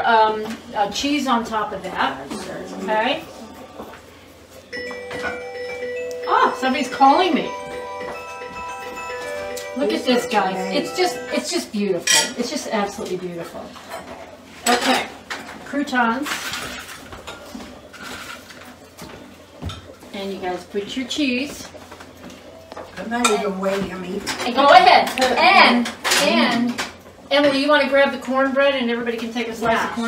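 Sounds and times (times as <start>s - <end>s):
phone ringtone melody: 4.7s - 12.0s.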